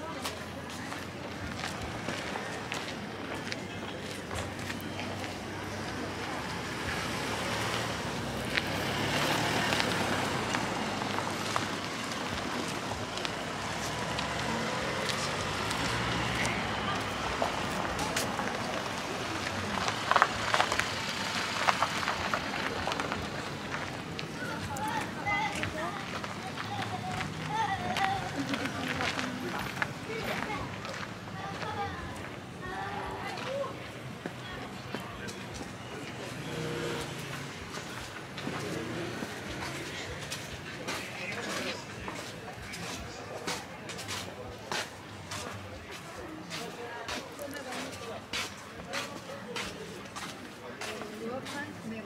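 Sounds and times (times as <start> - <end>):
footsteps on paving: 0.0 - 6.1, 7.6 - 52.0
voices talking: 0.0 - 52.0.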